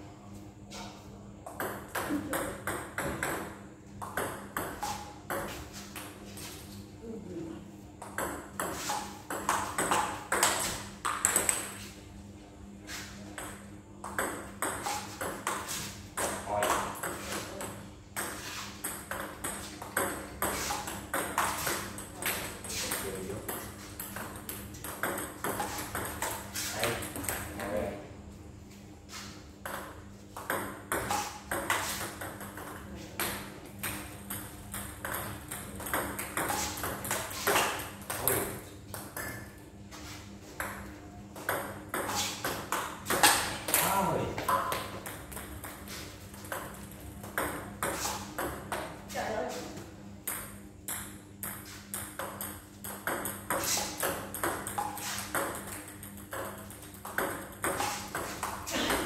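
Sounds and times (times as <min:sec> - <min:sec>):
balls bouncing on table: 0:01.4 - 0:06.5, 0:08.0 - 0:11.9, 0:13.2 - 0:27.8, 0:29.6 - 0:39.6, 0:40.4 - 0:49.1, 0:50.2 - 0:59.0
balls tapping on floor: 0:01.4 - 0:06.5, 0:08.0 - 0:11.9, 0:13.3 - 0:27.8, 0:29.6 - 0:39.6, 0:40.5 - 0:49.1, 0:50.2 - 0:59.0
table tennis balls hitting paddles: 0:01.4 - 0:06.6, 0:08.0 - 0:12.0, 0:12.9 - 0:27.8, 0:29.1 - 0:59.0.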